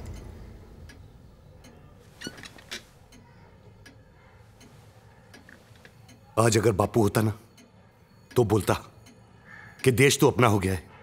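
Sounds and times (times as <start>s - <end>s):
faint irregular clicks: 0.0s - 6.4s.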